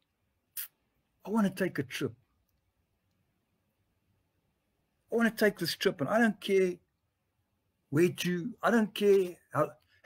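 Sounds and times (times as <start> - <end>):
man speaking: 0.6 - 2.3, 5.1 - 6.9, 7.9 - 9.8.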